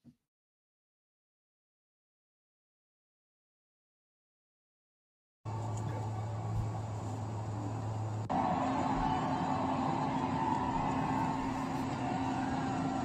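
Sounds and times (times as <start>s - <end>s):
idling vehicles: 5.5s - 13.0s
steady low hum: 5.5s - 13.0s.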